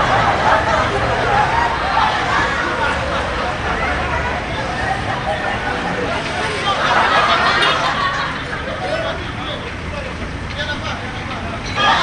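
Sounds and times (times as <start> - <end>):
traffic rumble: 0.0 - 12.0
men talking: 2.8 - 12.0.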